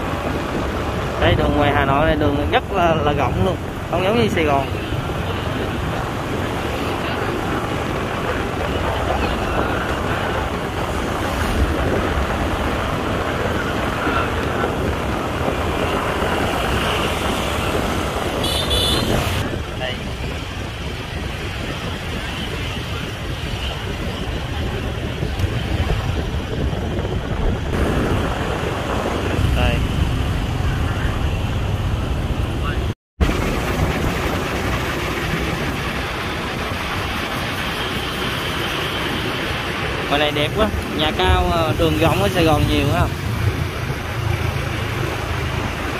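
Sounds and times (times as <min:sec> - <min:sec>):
road and traffic noise: 0:00.0 - 0:45.9
traffic passing: 0:00.0 - 0:45.9
wind rush: 0:00.0 - 0:45.9.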